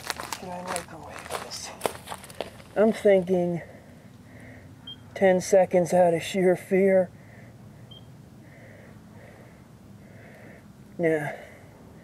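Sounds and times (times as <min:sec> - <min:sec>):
rasping breaths through gas mask: 0:08.4 - 0:10.7.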